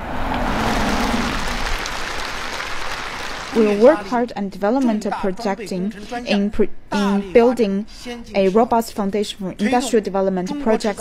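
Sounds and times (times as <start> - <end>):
large audience applauding: 0.0 - 4.2.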